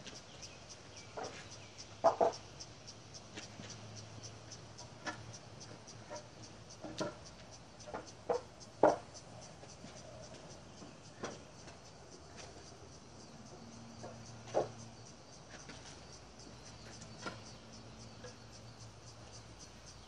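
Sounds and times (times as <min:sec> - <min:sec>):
insects chirping: 0:00.0 - 0:20.0
wooden boards knocking on concrete: 0:02.0 - 0:02.4, 0:07.9 - 0:09.0.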